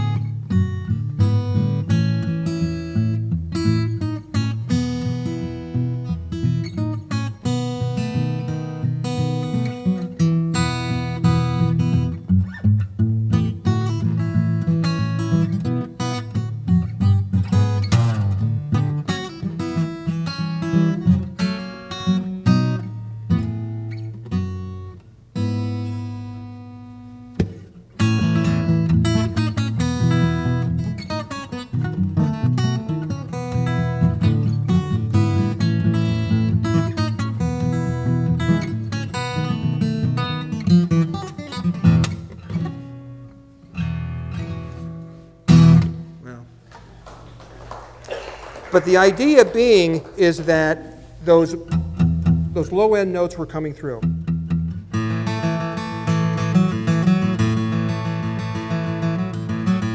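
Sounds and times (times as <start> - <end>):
fingerstyle acoustic guitar: 0.0 - 47.1, 50.5 - 52.9, 54.0 - 59.9.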